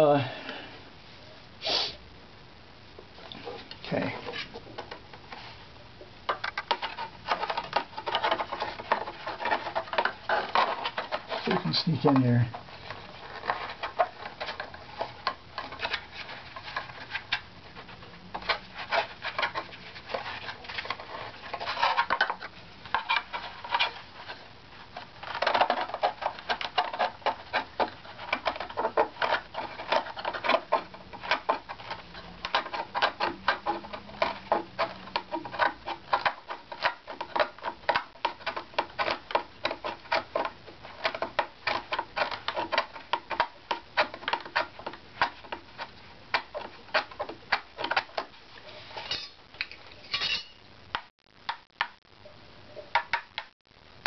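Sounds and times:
hand scraper scraping wood: 6.7s - 24.4s, 25.2s - 49.2s.

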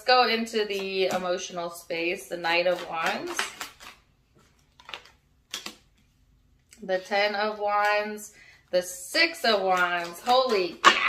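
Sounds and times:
cards snapping on table: 4.8s - 5.9s.

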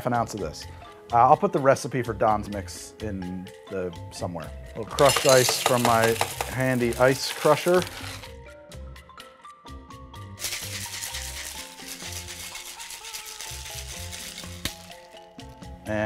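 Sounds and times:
background music: 0.0s - 16.0s
ice rattling in cocktail shaker: 4.9s - 8.3s, 10.4s - 15.2s.

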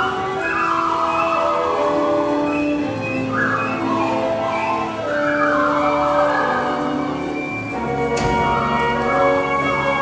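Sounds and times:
orchestra playing: 0.0s - 10.0s.

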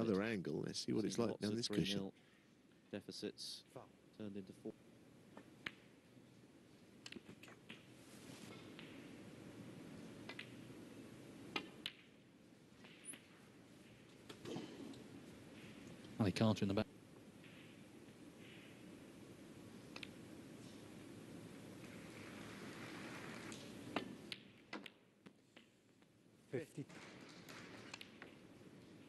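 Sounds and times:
balls clicking together: 10.0s - 10.8s, 11.5s - 16.2s, 19.8s - 20.3s, 23.5s - 26.1s, 26.9s - 29.0s
balls knocking together: 10.2s - 10.7s, 11.5s - 12.2s, 26.9s - 29.0s.

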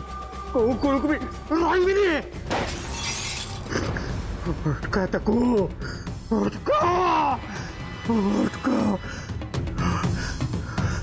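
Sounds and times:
wine glass smashing: 2.5s - 3.9s
man crying out: 6.3s - 7.6s.

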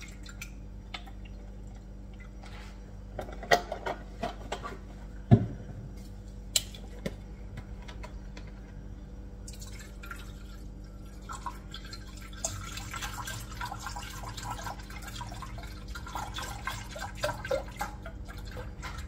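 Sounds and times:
milk pouring into a pot: 9.5s - 19.0s.

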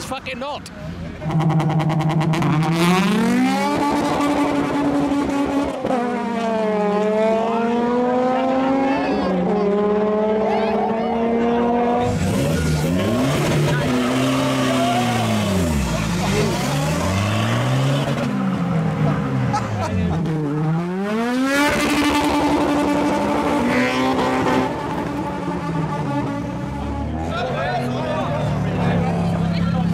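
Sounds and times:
car engines revving: 0.0s - 29.9s.

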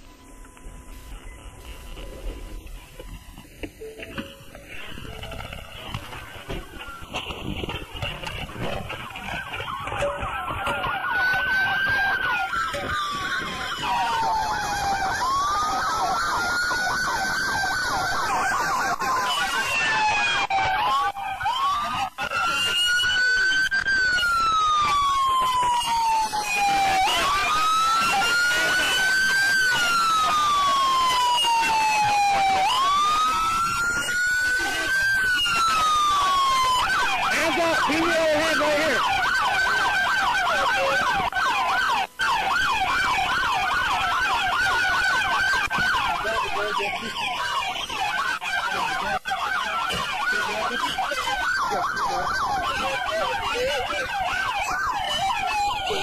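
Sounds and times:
police siren wailing: 0.0s - 56.0s
siren fast yelp: 0.0s - 56.0s.

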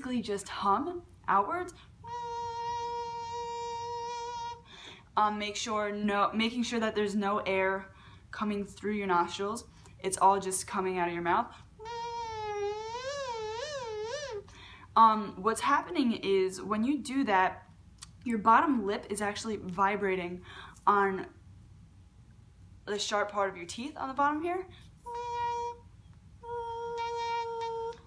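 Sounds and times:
buzzy mouth kazoo tone: 2.0s - 4.8s, 11.8s - 14.5s, 25.0s - 28.0s.

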